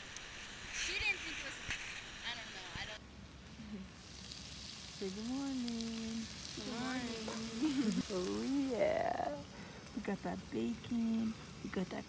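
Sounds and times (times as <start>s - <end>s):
bacon sizzling in a skillet: 3.9s - 12.0s.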